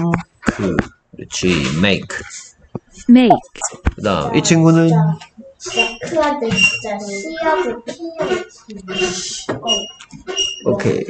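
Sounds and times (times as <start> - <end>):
person talking: 0.0 - 9.9, 10.7 - 11.0.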